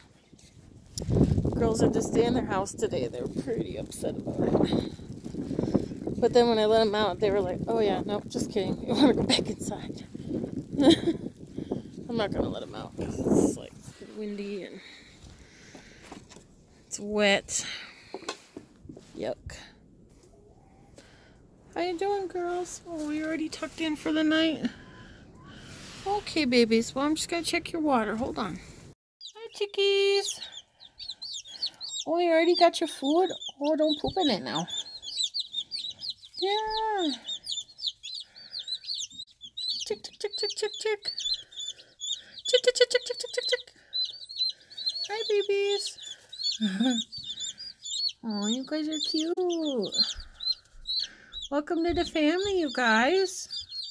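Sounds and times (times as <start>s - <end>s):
chicks peeping: 0.2s - 13.6s, 29.2s - 53.9s
person's voice: 6.2s - 10.0s, 12.1s - 14.8s, 21.8s - 24.8s, 36.4s - 37.2s, 48.2s - 50.1s.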